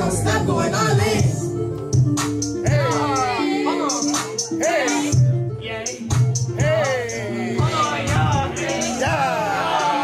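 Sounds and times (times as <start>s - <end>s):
sung vocal line: 0.0s - 10.0s
hi-hats: 1.9s - 10.0s.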